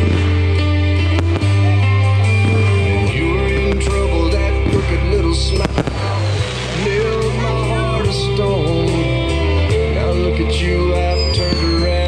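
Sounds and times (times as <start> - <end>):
fireworks bangs: 0.0 - 9.0, 11.1 - 12.0
song playing: 0.0 - 12.0.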